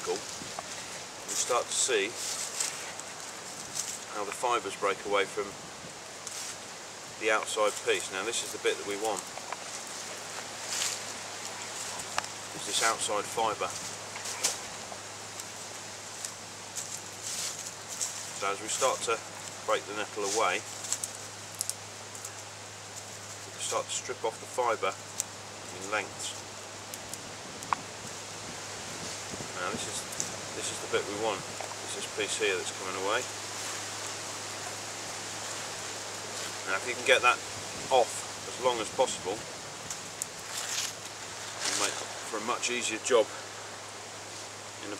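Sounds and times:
background hiss: 0.0s - 44.9s.

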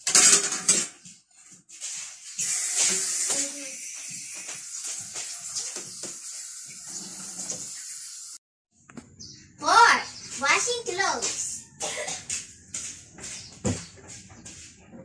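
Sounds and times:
dishes clinking and knocking: 0.0s - 1.1s
tap water running into sink: 2.4s - 8.4s.

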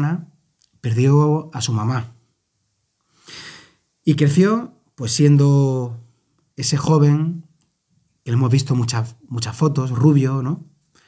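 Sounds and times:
man breathing in: 3.0s - 3.9s.

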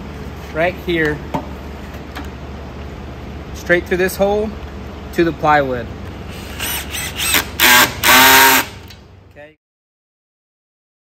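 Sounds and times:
steady low hum: 0.0s - 9.6s.

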